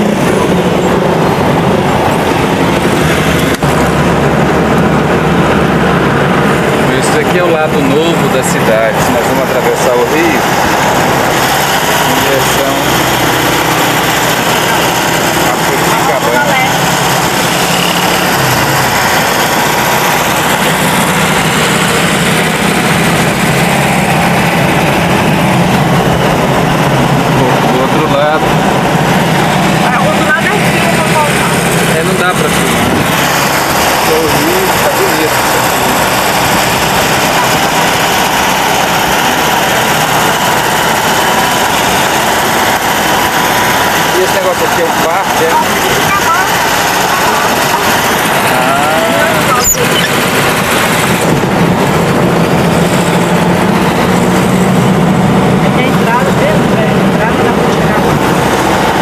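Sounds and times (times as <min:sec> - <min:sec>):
car engine drone: 0:00.0 - 0:59.0
road noise rushing: 0:00.0 - 0:59.0.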